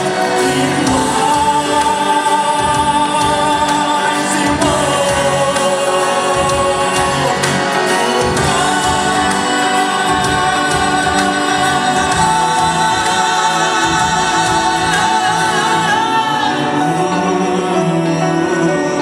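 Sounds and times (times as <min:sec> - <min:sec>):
amplified backing music: 0:00.0 - 0:19.0
men singing into microphones: 0:00.0 - 0:19.0.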